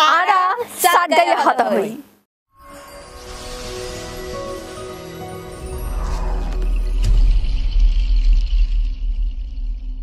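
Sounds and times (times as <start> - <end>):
shimmering high tone: 2.5 - 8.8
low rumble: 3.2 - 10.0
deep hit: 3.4 - 10.0.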